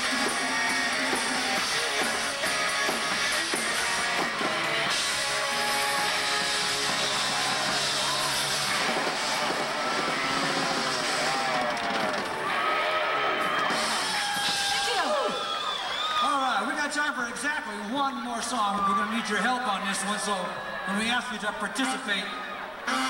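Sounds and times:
electric guitar: 0.0s - 15.3s, 22.4s - 23.0s
live rock band: 0.0s - 16.2s
crowd shouting: 0.0s - 16.5s, 18.3s - 23.0s.

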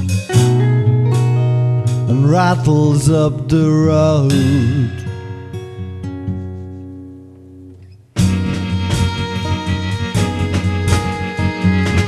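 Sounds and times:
plucked guitar notes: 0.0s - 12.0s
strummed acoustic guitar: 0.0s - 12.0s.

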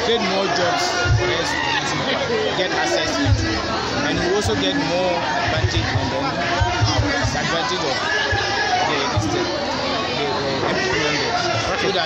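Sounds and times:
crowd chatter: 0.0s - 12.0s
man speaking close up: 10.2s - 12.0s.

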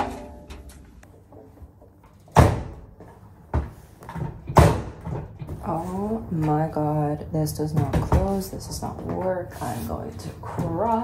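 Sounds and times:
washing machine door thumping: 2.3s - 2.9s, 3.5s - 5.6s.

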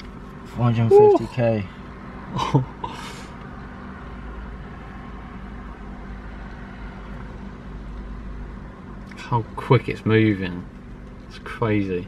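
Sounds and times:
short vocal sound: 0.9s - 1.3s.

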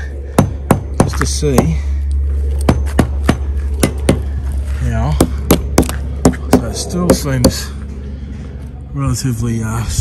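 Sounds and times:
hammer knocking on wooden pole: 0.4s - 1.8s, 2.7s - 4.2s.

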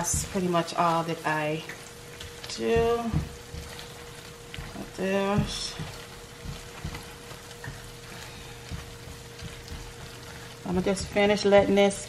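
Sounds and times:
spatula scraping and knocking pan: 0.0s - 0.7s, 2.1s - 12.0s
food sizzling in a frying pan: 0.0s - 12.0s.

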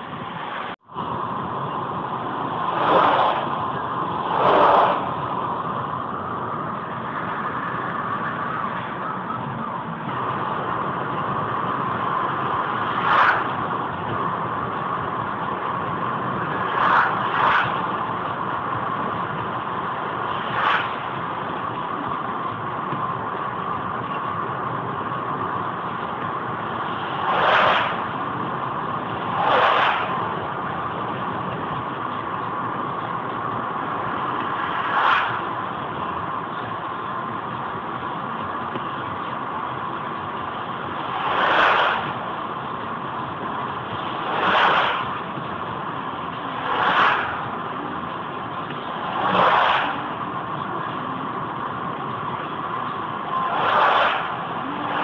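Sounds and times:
passing vehicle whoosh: 0.0s - 21.9s, 25.6s - 36.9s, 40.2s - 50.9s, 51.8s - 55.0s
car road and engine noise: 0.0s - 55.0s.

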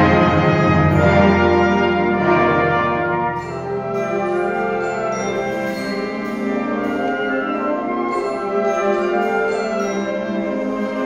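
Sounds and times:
concert band playing chords: 0.0s - 11.0s.

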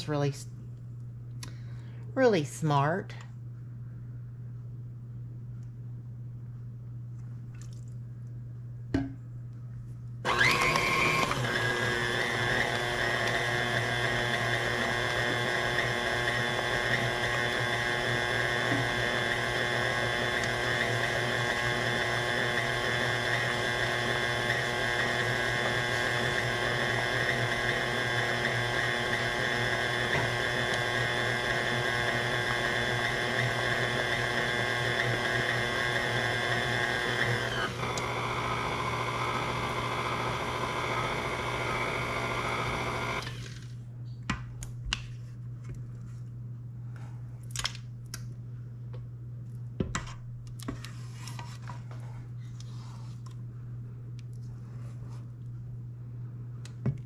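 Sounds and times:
stand mixer motor whining: 10.3s - 43.6s.

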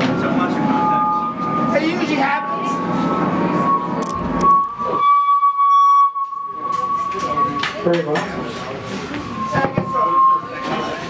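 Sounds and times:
high-pitched feedback squeal: 0.0s - 11.0s.

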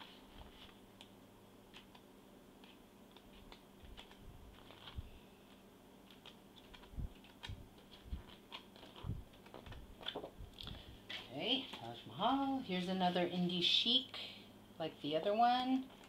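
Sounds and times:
paper sheets rustling: 0.0s - 0.8s, 2.6s - 10.4s.

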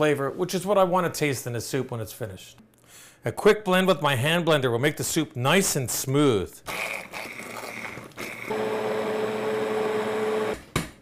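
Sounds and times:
immersion blender motor whir: 6.7s - 10.6s.

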